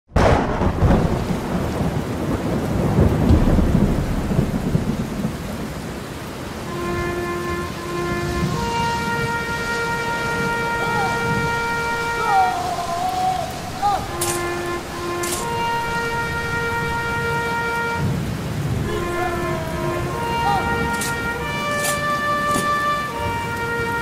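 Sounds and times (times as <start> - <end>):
steady rain: 0.1 - 24.0
thunder clap: 0.1 - 24.0
thunder rumbling: 0.1 - 24.0
held musical notes: 6.6 - 24.0.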